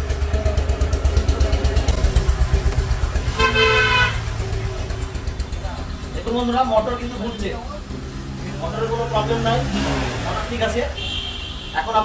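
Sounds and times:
low rapid throbbing: 0.0 - 10.3
vehicle horn: 3.2 - 4.5, 10.9 - 12.0.

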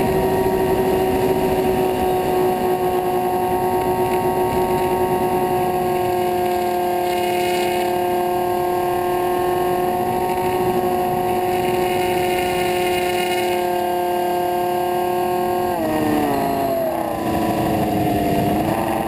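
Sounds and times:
electric motors and propellers whining: 0.0 - 19.0
rushing wind noise: 0.0 - 19.0.

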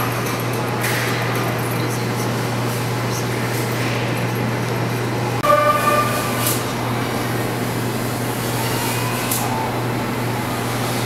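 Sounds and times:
short pitched toot: 5.4 - 6.6.

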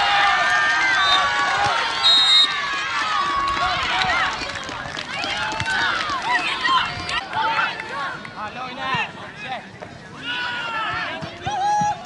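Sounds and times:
boys shouting and cheering: 0.0 - 4.4, 10.2 - 12.0.

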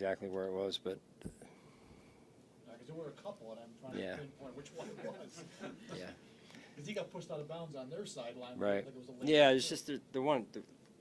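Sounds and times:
soft breath sound: 1.3 - 2.5
man speaking: 2.7 - 6.2.

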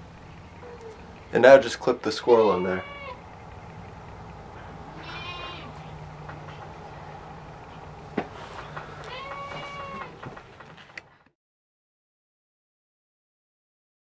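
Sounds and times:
steady low hum: 0.0 - 11.3
animal calling: 0.4 - 1.6, 2.2 - 10.9.

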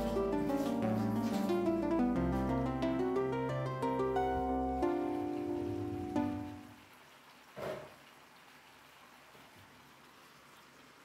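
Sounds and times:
plucked string background music: 0.0 - 6.7.

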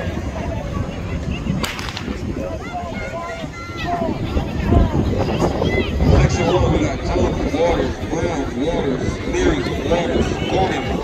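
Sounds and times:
spectators' voices: 0.0 - 11.0
starter's pistol firing: 1.6 - 2.2.

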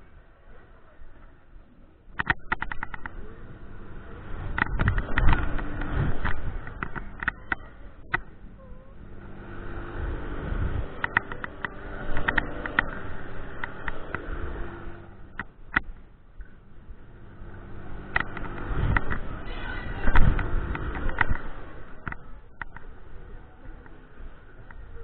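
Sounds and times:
faint steady hum: 0.0 - 25.0
sharp clicks: 2.1 - 3.2, 4.4 - 8.4, 10.7 - 16.5, 18.0 - 19.3, 20.0 - 22.9
wind rushing over microphone: 2.1 - 25.0.

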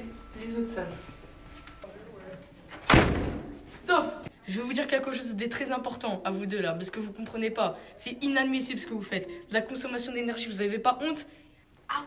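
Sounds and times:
door banging shut: 2.8 - 3.6.

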